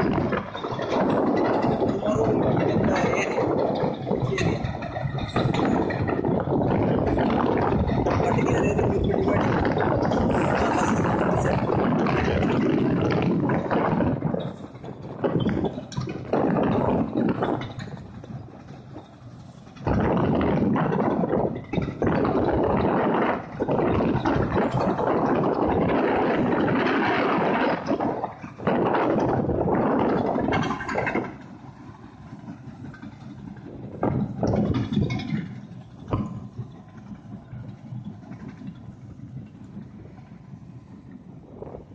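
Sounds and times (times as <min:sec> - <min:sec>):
diesel engine under load: 0:00.0 - 0:41.9.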